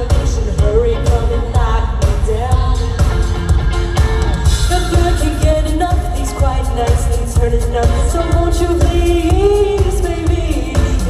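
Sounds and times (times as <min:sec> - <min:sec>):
live pop band music: 0:00.0 - 0:11.0.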